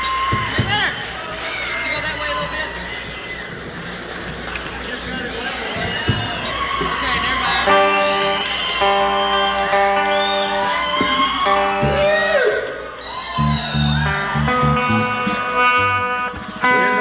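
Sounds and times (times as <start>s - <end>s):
guitar chords strummed: 7.7s - 10.8s, 11.4s - 12.5s, 13.4s - 17.0s
bass notes: 11.4s - 12.5s, 13.4s - 17.0s
sliding bending guitar notes: 11.4s - 12.7s, 13.4s - 17.0s.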